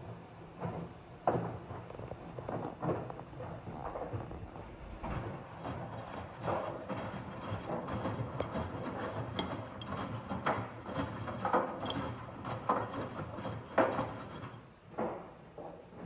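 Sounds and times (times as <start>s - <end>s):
washing machine drum tumbling laundry: 0.0s - 14.7s.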